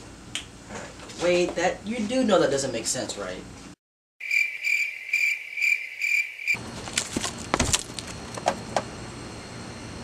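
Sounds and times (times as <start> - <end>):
crickets chirping: 4.2 - 10.0.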